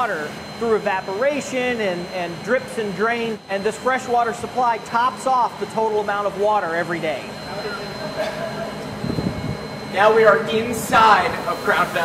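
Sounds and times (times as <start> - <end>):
pump machinery hum: 0.0 - 12.0.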